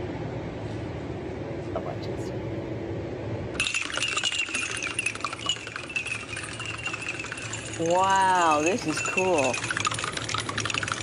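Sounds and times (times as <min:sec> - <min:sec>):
low steady hum: 0:00.0 - 0:11.0
shot glasses clinking in a chain: 0:03.6 - 0:11.0.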